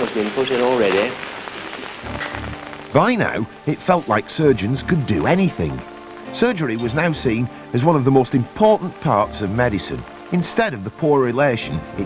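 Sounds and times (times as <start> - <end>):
crackling film hiss: 0.0 - 12.0
faint steady tones: 1.2 - 12.0
low hum: 2.0 - 8.5.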